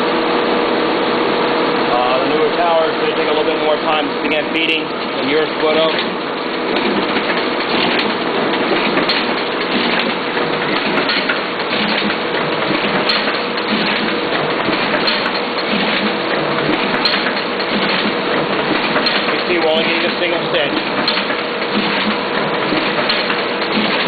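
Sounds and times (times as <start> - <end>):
booklet maker running: 1.7 - 24.0
machine clicks: 5.6 - 24.0.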